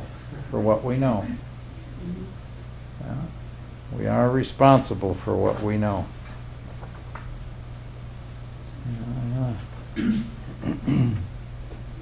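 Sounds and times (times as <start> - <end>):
low electrical hum: 0.0 - 12.0
man humming mmm: 1.2 - 2.4, 8.8 - 11.4.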